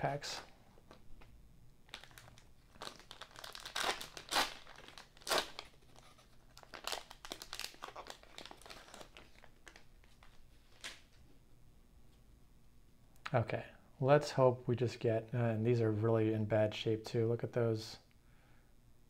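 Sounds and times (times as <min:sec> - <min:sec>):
plastic wrapper crinkling and tearing: 0:01.8 - 0:11.2.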